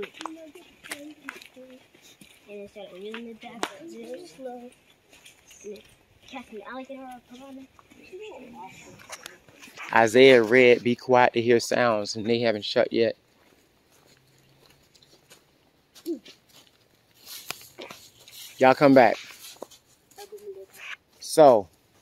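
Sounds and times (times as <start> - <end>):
footsteps and sticks on leafy trail: 0.0 - 22.0.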